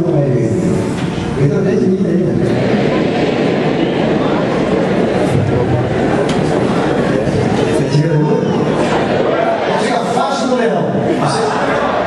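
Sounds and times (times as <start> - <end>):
crowd of voices speaking: 0.0 - 12.0.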